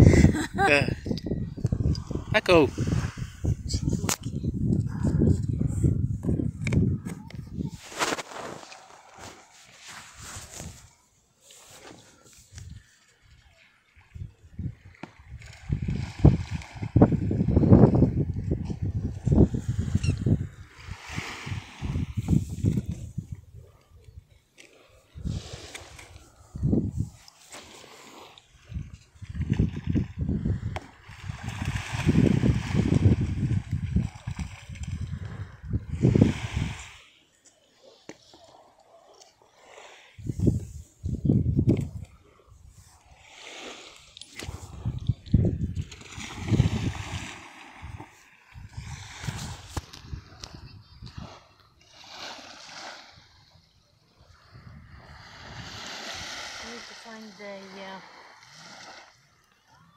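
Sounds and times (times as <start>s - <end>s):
wind buffeting microphone: 0.0s - 8.4s, 14.1s - 24.3s, 25.1s - 27.3s, 28.4s - 37.0s, 40.2s - 42.9s, 44.4s - 51.7s, 54.2s - 55.9s.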